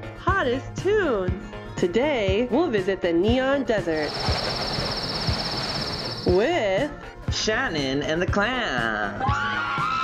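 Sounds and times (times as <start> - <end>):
insect trill: 4.0 - 6.6.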